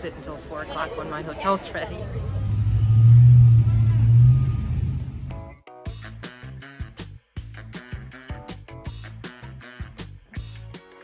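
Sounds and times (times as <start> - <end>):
vehicle engine rumble: 1.7 - 5.6.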